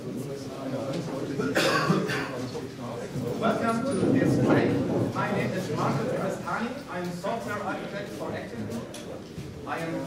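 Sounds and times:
murmur of audience chatting: 0:00.0 - 0:10.0
person coughing: 0:01.4 - 0:02.4.

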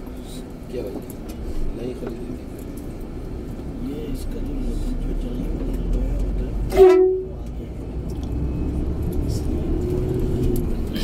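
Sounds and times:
background voices: 0:00.0 - 0:11.0
bus engine and road rumble: 0:00.0 - 0:11.0
vehicle horn blast: 0:06.7 - 0:07.4.

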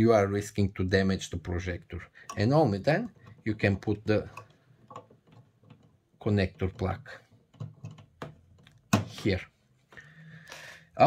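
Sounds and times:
plastic clicks and knocks: 0:04.3 - 0:06.0, 0:06.6 - 0:09.1.

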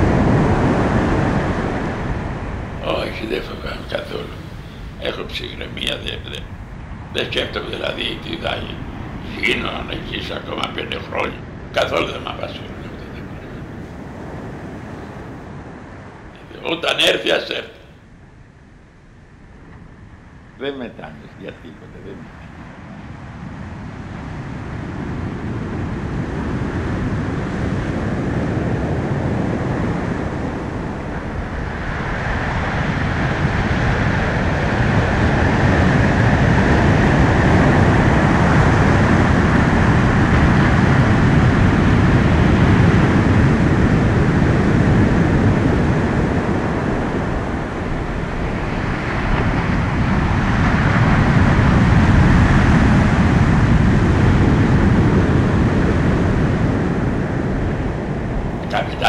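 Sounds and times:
loud rushing rumble: 0:00.0 - 0:18.0.

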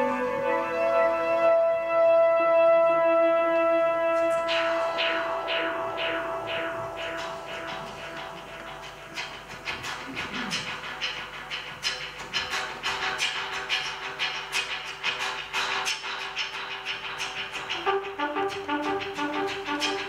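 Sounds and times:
trumpet and guitar jazz: 0:00.0 - 0:10.0, 0:17.7 - 0:20.0
clicking percussive rhythm: 0:03.6 - 0:20.0.

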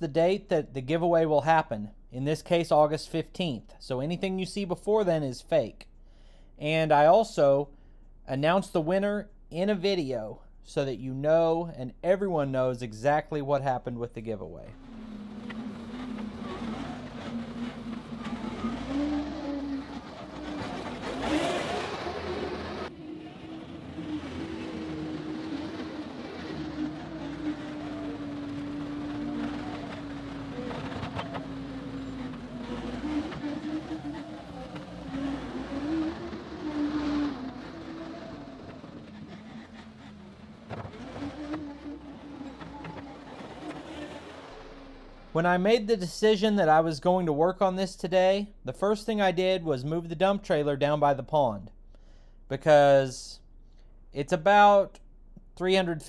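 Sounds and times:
diesel track loader engine running: 0:14.4 - 0:45.7.

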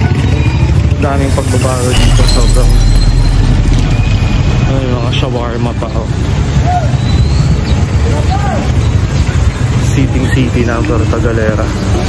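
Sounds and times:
street noise rumble: 0:00.0 - 0:12.0
voices talking: 0:00.0 - 0:12.0.

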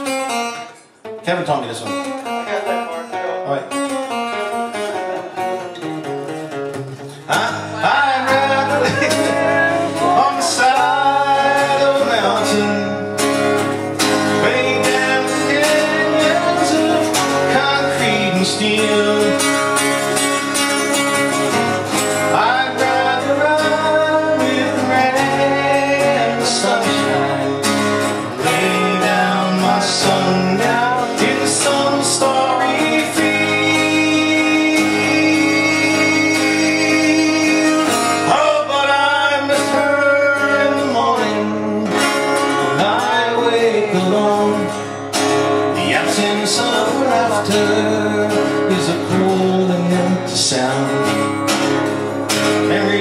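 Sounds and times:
acoustic guitar strumming: 0:00.0 - 0:53.0
man singing: 0:07.1 - 0:21.0, 0:21.9 - 0:51.6, 0:52.4 - 0:53.0.

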